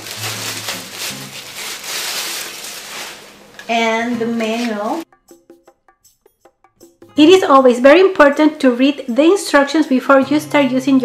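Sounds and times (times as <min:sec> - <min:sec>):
plastic packaging crinkling: 0:00.0 - 0:05.0.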